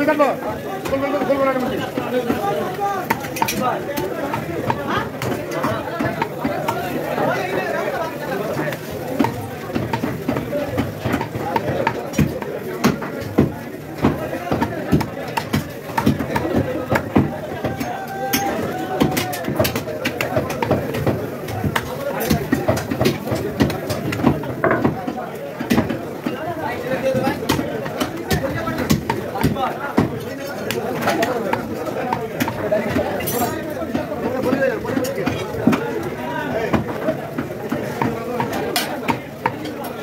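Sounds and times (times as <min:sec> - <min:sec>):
people talking: 0:00.0 - 0:40.0.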